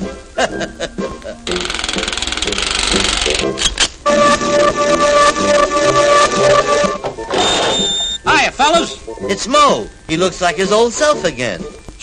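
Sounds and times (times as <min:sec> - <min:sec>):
rapid rattling buzz: 0:01.4 - 0:07.8
machine clicks: 0:01.5 - 0:04.0
steady high electronic tone: 0:04.0 - 0:08.2.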